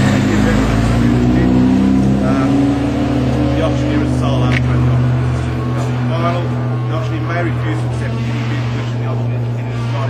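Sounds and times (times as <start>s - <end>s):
man speaking: 0.0s - 2.8s, 3.4s - 10.0s
motor engine droning: 0.0s - 10.0s.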